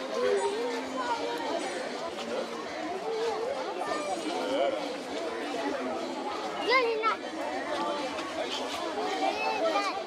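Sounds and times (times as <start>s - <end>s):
babble of voices: 0.0s - 10.0s.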